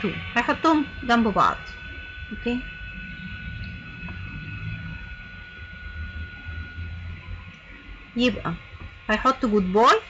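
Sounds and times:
faint high whine: 0.0s - 10.0s
uneven low rumble: 0.0s - 10.0s.

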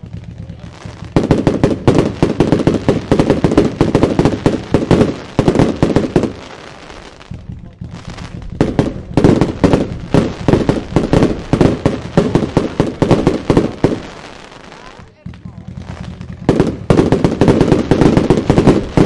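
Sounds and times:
fireworks bangs and crackles: 0.0s - 19.0s.

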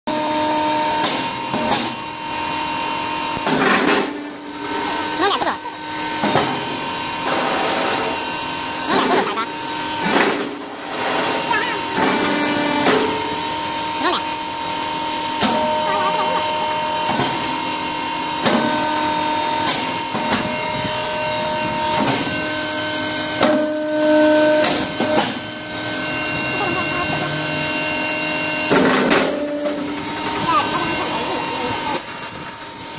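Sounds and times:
loud noisy machine bursts: 0.1s - 32.9s
press machine humming: 0.1s - 32.9s
machine knocks and clanks: 3.4s - 4.8s, 10.0s - 13.4s, 28.6s - 30.4s.

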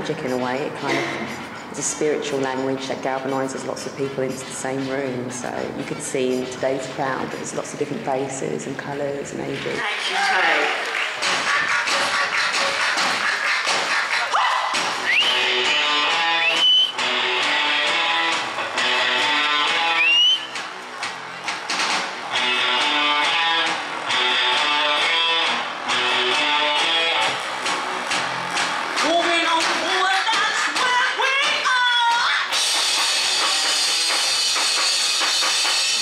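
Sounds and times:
live band music: 10.0s - 31.8s, 32.5s - 36.0s
drum beat: 10.4s - 23.4s, 25.4s - 36.0s
electric guitar sliding notes: 22.2s - 29.0s.

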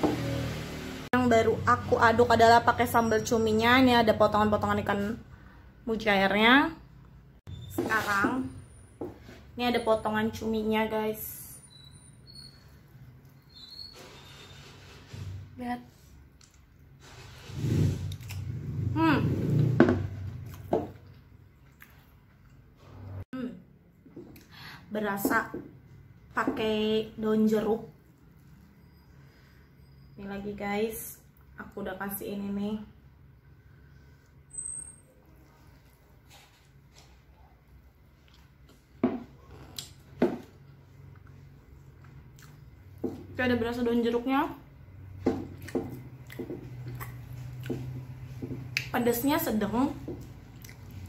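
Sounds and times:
quiet chewing: 41.0s - 43.0s, 50.2s - 51.0s
woman chewing: 50.4s - 51.0s.

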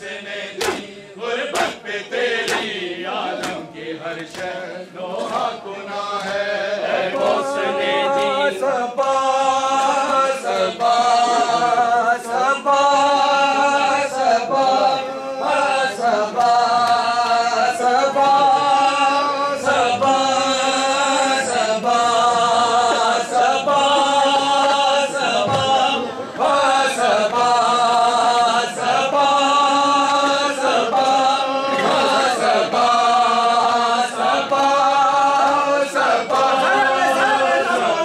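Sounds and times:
men chanting together: 0.0s - 38.0s
hands slapping chest: 0.6s - 0.9s, 1.5s - 1.8s, 2.4s - 2.8s, 3.4s - 4.6s.

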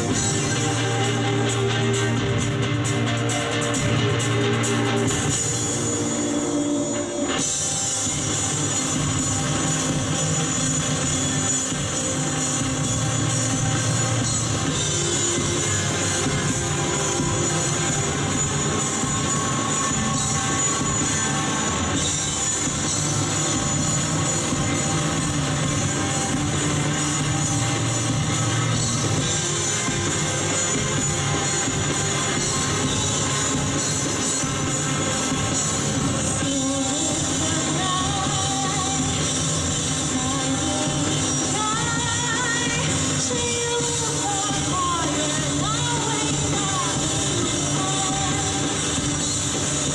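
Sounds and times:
electric bass: 0.0s - 43.4s
drum kit: 0.0s - 49.9s
electric guitars: 0.0s - 49.9s.

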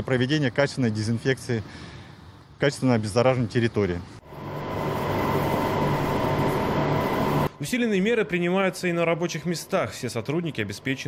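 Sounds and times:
electric pump motors humming: 4.2s - 7.6s
steady machine whine: 4.2s - 8.8s.

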